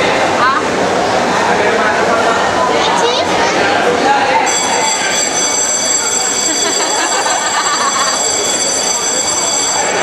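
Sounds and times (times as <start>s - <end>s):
stadium crowd din: 0.0s - 10.0s
high-pitched ringing tone: 4.4s - 10.0s.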